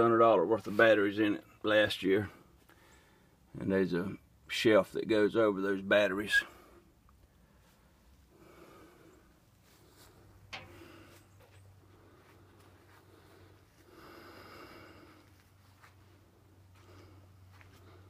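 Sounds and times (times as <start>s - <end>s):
faint soft rustling: 9.0s - 18.0s.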